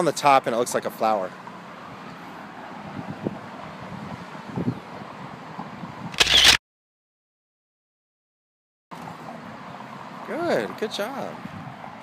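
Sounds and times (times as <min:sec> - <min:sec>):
outdoor background noise: 0:00.0 - 0:06.6, 0:08.9 - 0:12.0
camera shutter click: 0:06.2 - 0:06.6.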